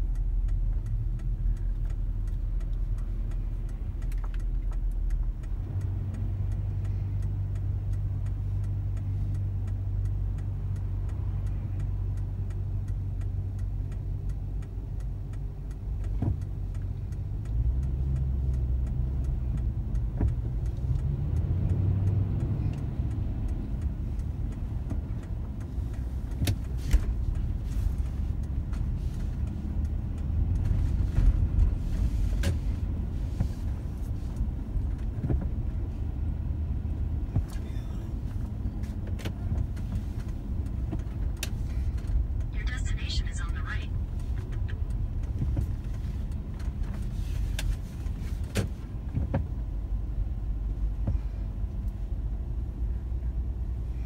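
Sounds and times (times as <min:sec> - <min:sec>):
car engine from inside cabin: 0:00.0 - 0:54.0.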